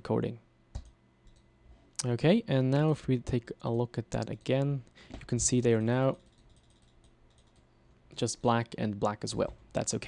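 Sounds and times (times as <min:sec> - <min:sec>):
keyboard and mouse clicking: 0:00.7 - 0:01.5, 0:06.1 - 0:07.7
person speaking: 0:02.0 - 0:06.3, 0:08.1 - 0:10.0.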